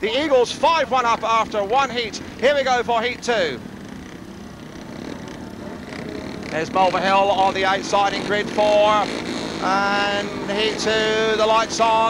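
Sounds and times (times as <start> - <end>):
motorcycle engines low hum: 0.0 - 12.0.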